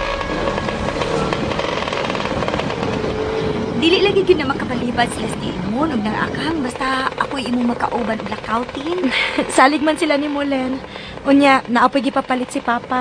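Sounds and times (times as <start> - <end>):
musical bridge: 0.0 - 6.2
small motorcycle engine running: 4.0 - 13.0.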